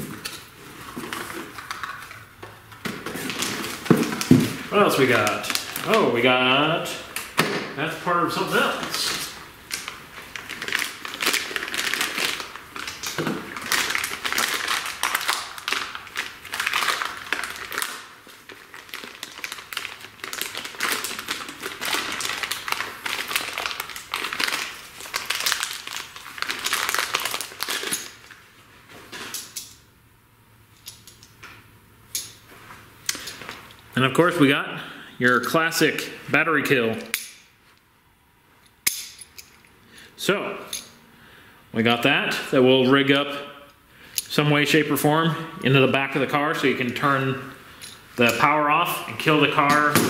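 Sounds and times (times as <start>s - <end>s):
plastic packaging crinkling: 0.0s - 6.3s, 8.0s - 29.3s.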